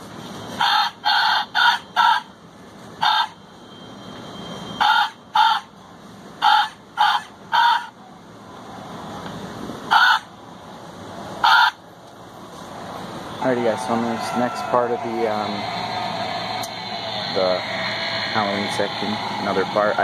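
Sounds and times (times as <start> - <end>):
recorded bird caws: 0.6 - 2.3, 3.0 - 3.4, 4.8 - 5.7, 6.4 - 8.0, 9.9 - 10.3, 11.4 - 11.8.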